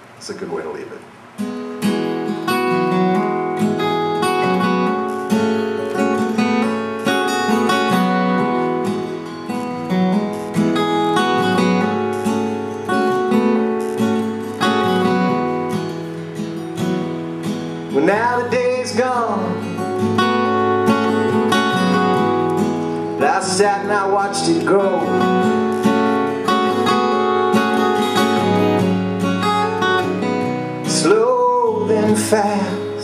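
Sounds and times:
acoustic guitar strumming chords: 0:00.0 - 0:33.0.

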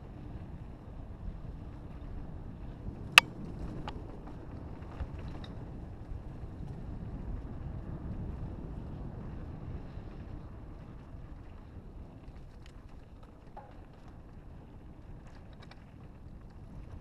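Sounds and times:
tyres rolling on dirt trail: 0:04.1 - 0:17.0.

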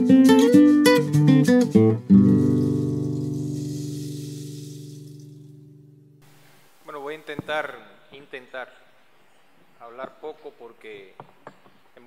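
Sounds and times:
acoustic guitar chord ringing: 0:00.0 - 0:06.3.

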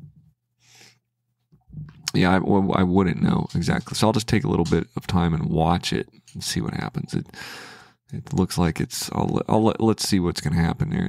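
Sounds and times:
man breathing: 0:00.6 - 0:01.0, 0:07.3 - 0:08.1.

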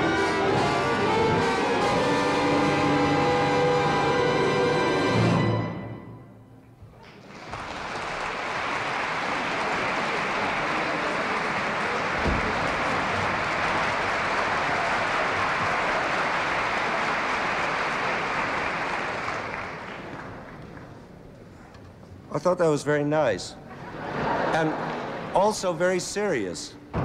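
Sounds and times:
audience applauding: 0:07.0 - 0:21.2
low thud: 0:12.2 - 0:12.8.

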